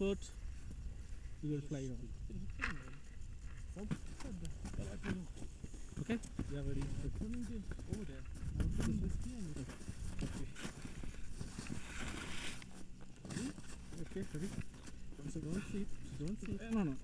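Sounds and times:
indistinct quiet voices talking: 0.0s - 17.0s
wind rumble on microphone: 0.0s - 17.0s.

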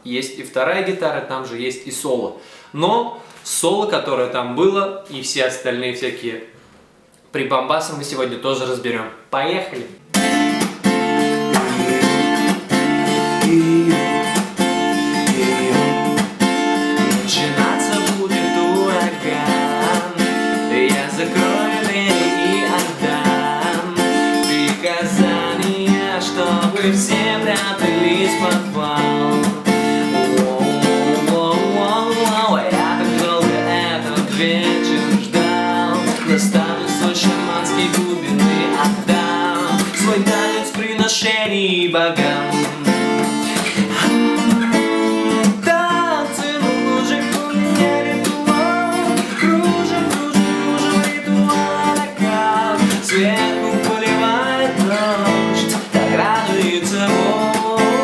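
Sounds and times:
acoustic guitar strumming: 10.0s - 58.0s
man singing: 11.0s - 58.0s.

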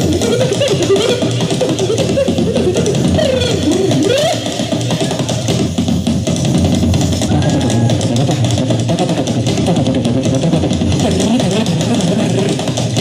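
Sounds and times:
loud live amplified music: 0.0s - 13.0s.

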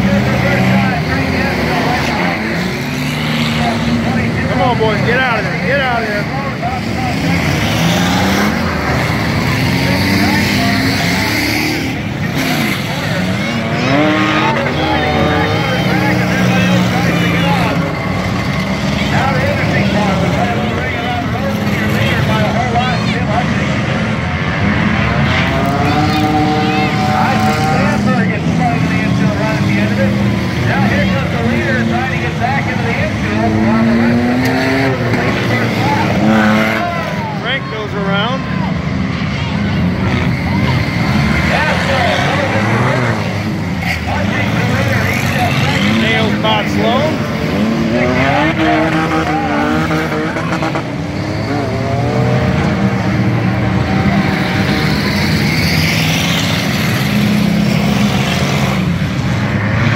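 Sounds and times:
race car engines revving: 0.0s - 59.9s.

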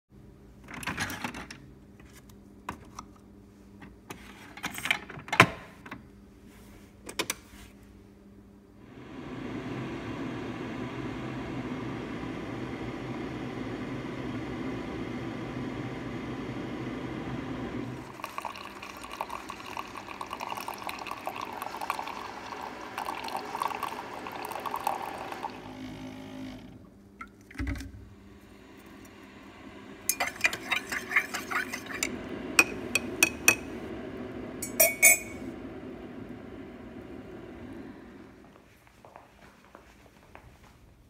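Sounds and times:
coffee maker humming: 8.8s - 38.6s
coffee streaming into a mug: 17.2s - 26.0s, 28.2s - 36.1s
spoon clinking against a mug: 30.1s - 33.7s, 34.6s - 35.4s.

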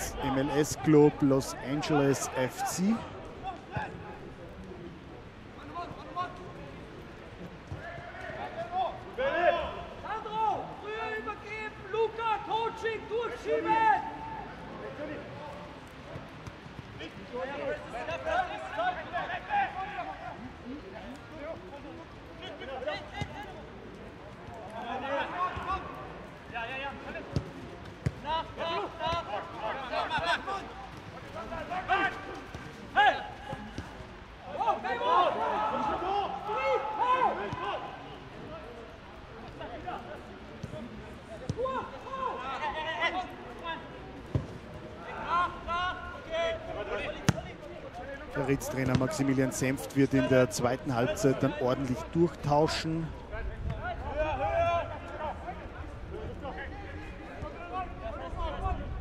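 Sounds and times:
players shouting: 0.0s - 4.4s, 7.7s - 15.8s, 24.7s - 53.0s.

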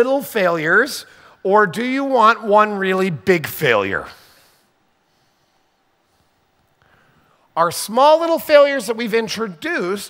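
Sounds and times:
man speaking: 0.0s - 4.4s, 7.5s - 10.0s.

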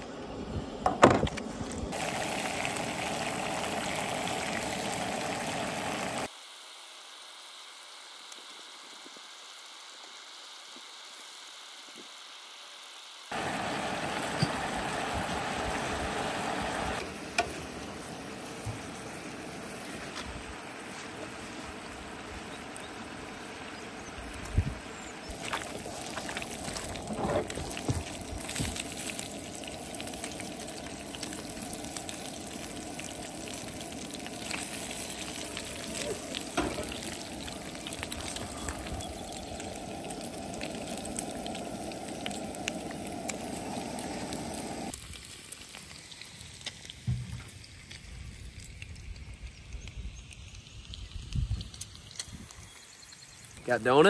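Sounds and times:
bacon sizzling in a frying pan: 1.9s - 54.0s.

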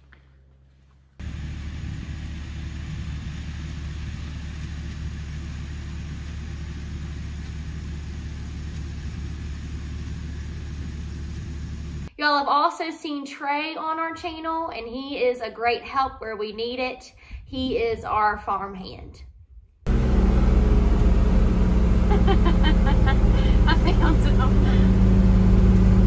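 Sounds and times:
tractor engine rumbling: 0.0s - 12.1s, 19.9s - 26.0s.

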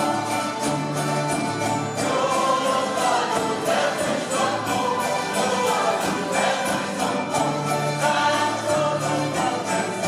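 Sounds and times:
group singing in chorus: 0.0s - 10.0s
guitars and mandolins strumming: 0.0s - 10.0s.

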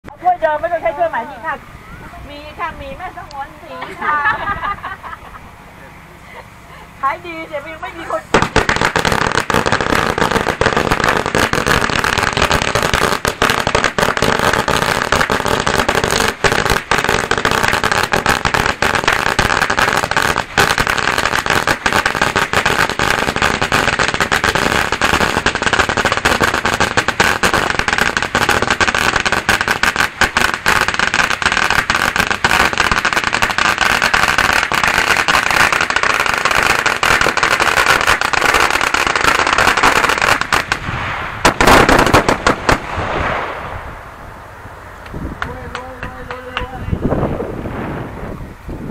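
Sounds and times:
firecracker string bangs: 8.3s - 44.1s.

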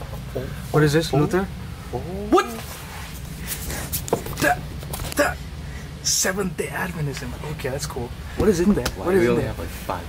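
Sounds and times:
low background hum: 0.0s - 10.0s
man exclaiming: 2.0s - 2.6s.

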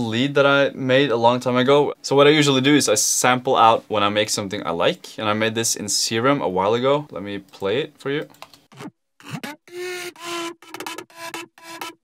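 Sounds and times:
synth lead short notes: 8.8s - 12.0s.

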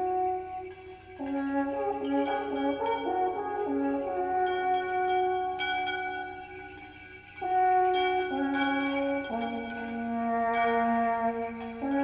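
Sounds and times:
alphorn playing: 0.0s - 6.8s, 7.4s - 12.0s.

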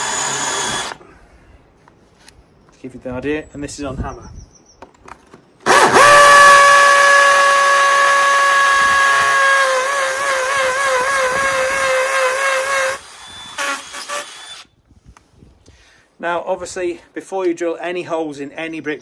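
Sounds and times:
hammer drill whining: 0.0s - 1.0s, 5.7s - 14.7s.

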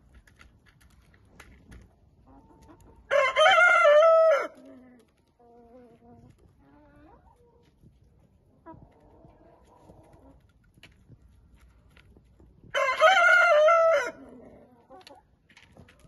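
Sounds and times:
distant rooster crow: 3.1s - 4.5s, 12.8s - 14.2s
rooster crowing: 3.1s - 4.5s, 12.8s - 14.2s
hens clucking: 4.6s - 10.8s.

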